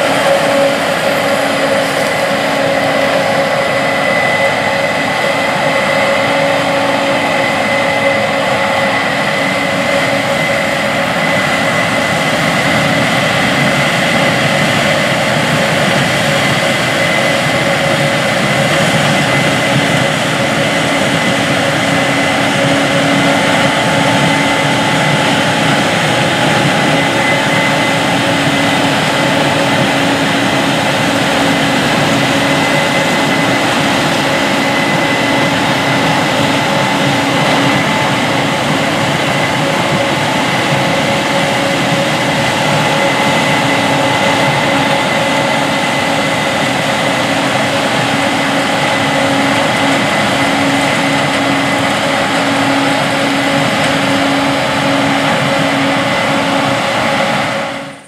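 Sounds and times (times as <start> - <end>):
combine harvester machinery drone: 0.0 - 58.0
thin high whine: 0.0 - 58.0.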